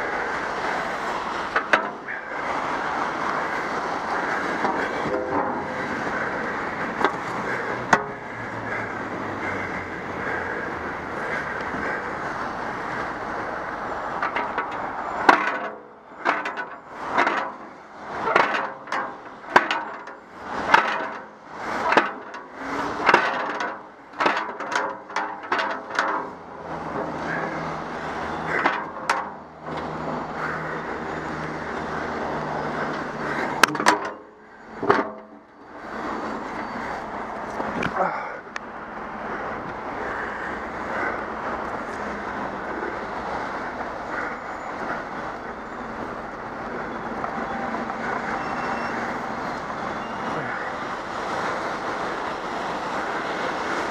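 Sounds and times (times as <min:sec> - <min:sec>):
metal road sign turned by hand: 0:00.0 - 0:53.9
motorway traffic rushing: 0:00.0 - 0:53.9.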